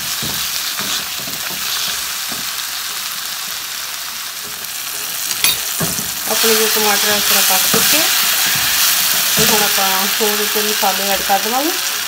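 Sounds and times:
spatula stirring in a wok: 0:00.0 - 0:11.4
onion and tomato sizzling in oil: 0:00.0 - 0:12.0.

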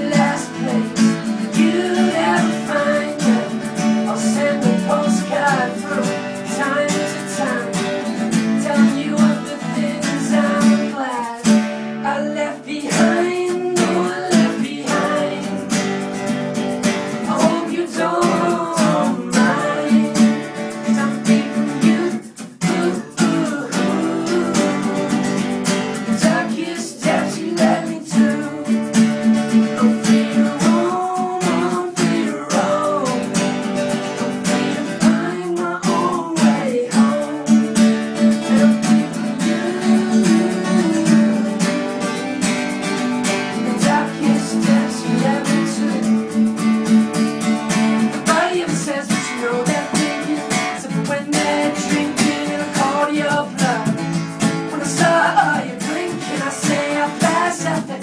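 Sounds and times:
men singing: 0:00.0 - 0:47.0, 0:47.6 - 0:58.0
acoustic guitars strumming: 0:00.0 - 0:58.0.

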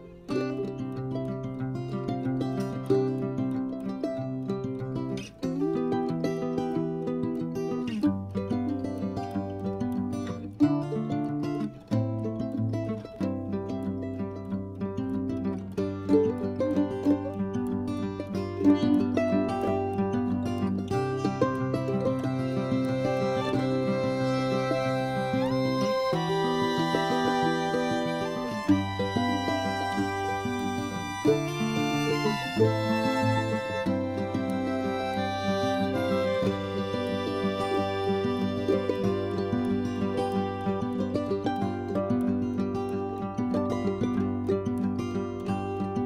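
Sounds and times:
plucked string background music: 0:00.0 - 0:46.0.

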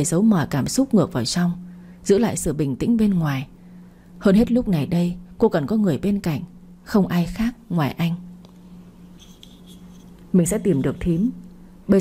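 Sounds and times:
woman narrating: 0:00.0 - 0:03.6, 0:04.2 - 0:08.3, 0:10.3 - 0:12.0
steady low hum: 0:00.0 - 0:12.0
hand rubbing near microphone: 0:08.6 - 0:11.4.

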